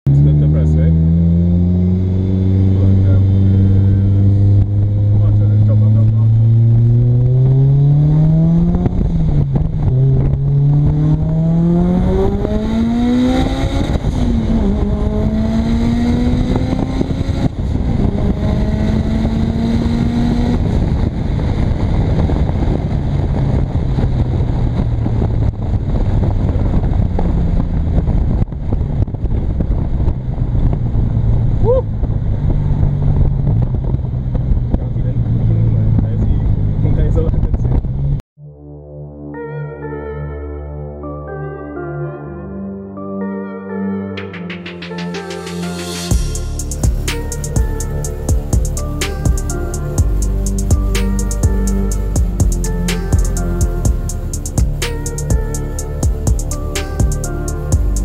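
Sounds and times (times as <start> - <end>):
car engine accelerating through gears: 0.1 - 38.2, 45.5 - 58.0.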